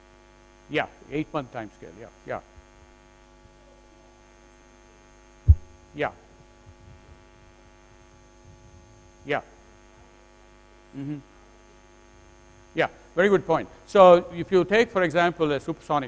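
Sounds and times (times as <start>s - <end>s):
electrical mains hum: 0.0s - 16.0s
sharp low thump: 5.5s - 5.8s.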